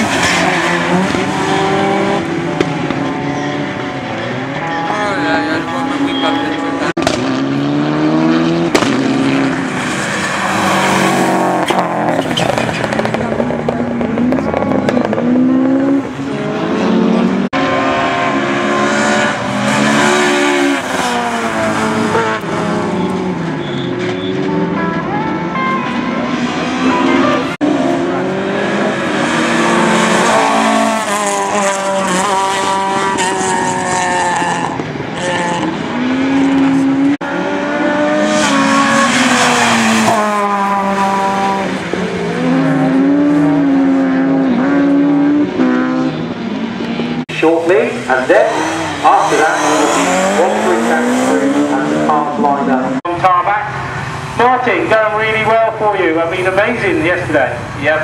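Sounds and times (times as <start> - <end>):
rally car engines revving: 0.0 - 58.0.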